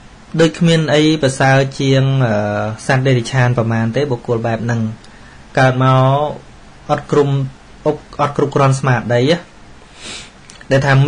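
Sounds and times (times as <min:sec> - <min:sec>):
man speaking: 0:00.3 - 0:09.5, 0:10.6 - 0:11.0.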